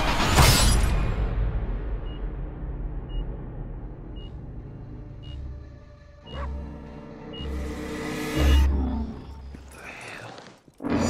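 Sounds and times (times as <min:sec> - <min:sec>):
low rumbling drone: 0:01.1 - 0:09.8.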